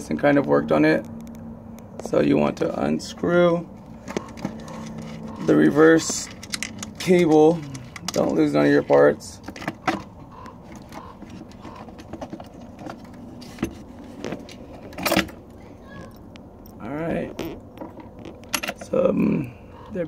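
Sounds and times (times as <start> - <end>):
small fasteners clicking and rattling: 3.9 - 19.0.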